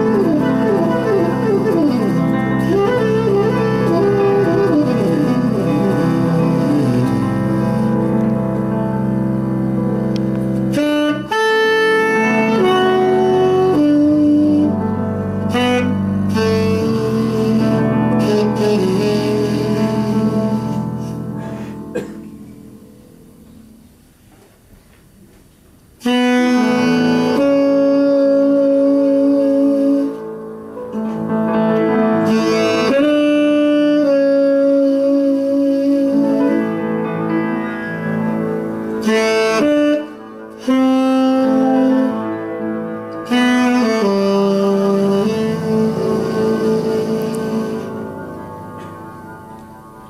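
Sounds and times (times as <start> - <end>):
tenor saxophone: 0.0 - 22.6, 26.0 - 50.0
double bass: 0.0 - 24.0, 30.9 - 42.6, 43.2 - 49.4
piano: 0.0 - 50.0.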